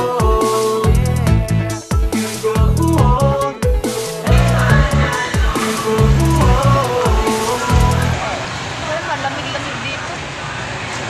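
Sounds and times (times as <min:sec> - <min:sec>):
music: 0:00.0 - 0:08.3.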